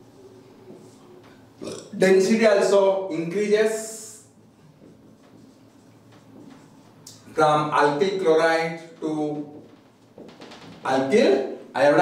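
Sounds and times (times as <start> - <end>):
man speaking: 1.8 - 4.3, 7.3 - 9.6, 10.8 - 12.0
marker strokes on whiteboard: 4.8 - 6.9.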